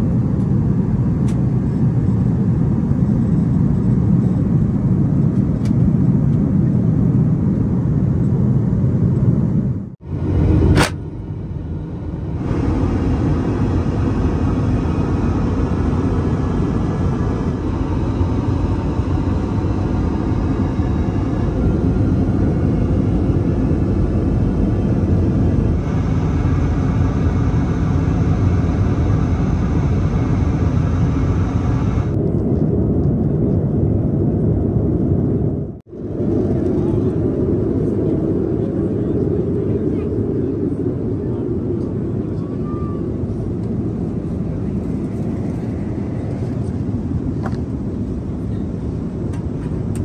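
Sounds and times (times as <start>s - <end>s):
airliner cabin drone: 0.0s - 50.0s.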